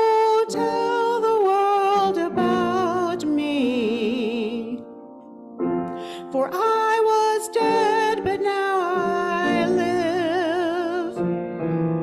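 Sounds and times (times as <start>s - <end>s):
woman singing into a microphone: 0.0s - 5.0s, 6.0s - 11.3s
grand piano: 0.0s - 12.0s.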